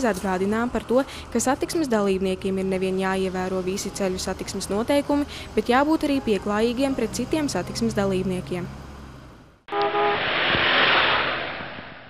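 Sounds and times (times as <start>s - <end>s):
brief tone: 9.7s - 11.3s
whoosh rushing noise: 9.9s - 12.0s.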